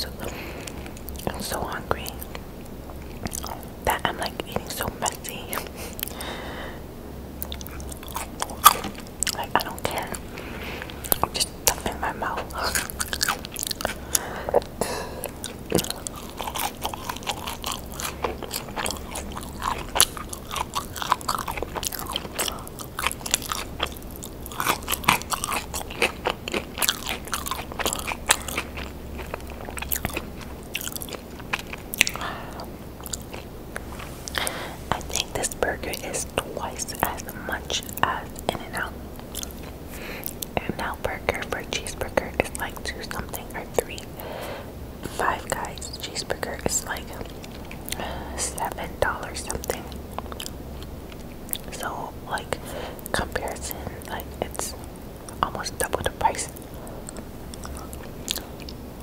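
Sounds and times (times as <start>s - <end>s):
close chewing food: 0.0s - 6.4s, 7.4s - 59.0s.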